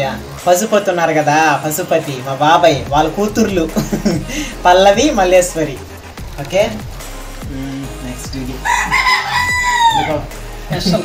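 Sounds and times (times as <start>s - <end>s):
high-pitched animal call: 8.6s - 10.2s.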